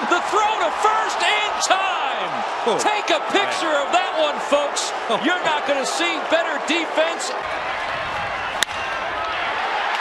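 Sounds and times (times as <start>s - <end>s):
ballpark crowd noise: 0.0s - 10.0s
bat cracking ball: 8.5s - 9.0s.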